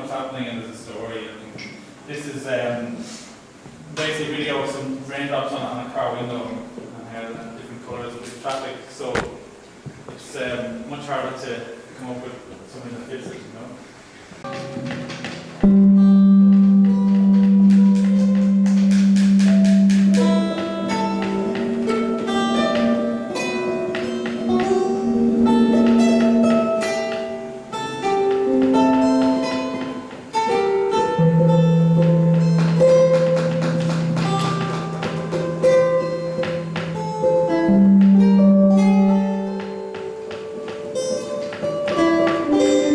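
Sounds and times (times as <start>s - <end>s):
classical guitars playing slow piece: 0.0s - 42.9s.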